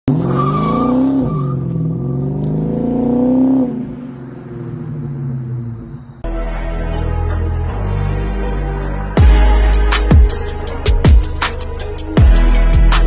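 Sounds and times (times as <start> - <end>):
car engine revving: 0.1 - 6.2.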